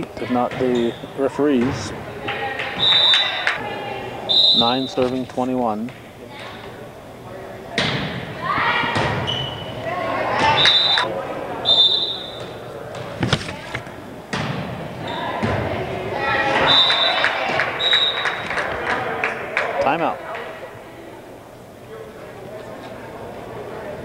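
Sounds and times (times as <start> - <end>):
volleyball slaps and thuds: 7.7 - 9.4, 12.9 - 14.8.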